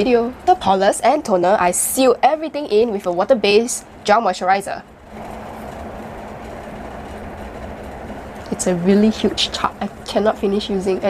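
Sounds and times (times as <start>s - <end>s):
faint constant hum: 0.0s - 11.0s
low rumbling background noise: 0.0s - 11.0s.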